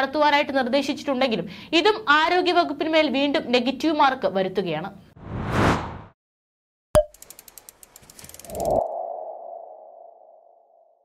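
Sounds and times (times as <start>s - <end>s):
fast ticks: 7.0s - 8.8s.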